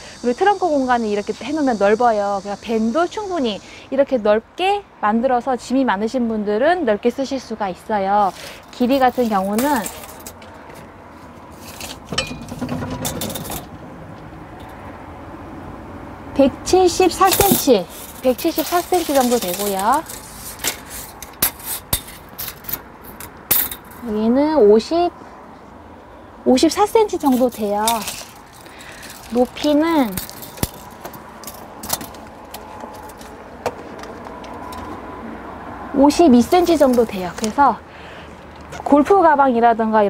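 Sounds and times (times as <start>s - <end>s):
tape measure scraping and rattling: 8.2s - 10.4s, 11.5s - 13.7s, 17.0s - 24.2s, 27.0s - 33.4s, 36.5s - 37.6s.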